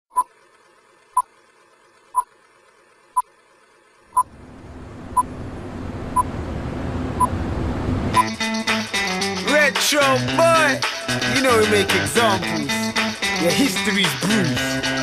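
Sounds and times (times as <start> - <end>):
low rumbling noise: 4.2 - 8.4.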